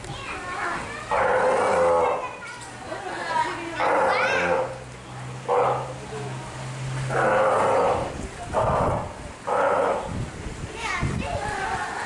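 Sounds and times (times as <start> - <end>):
sea lion calling: 1.1 - 2.3, 3.8 - 6.0, 7.1 - 10.2.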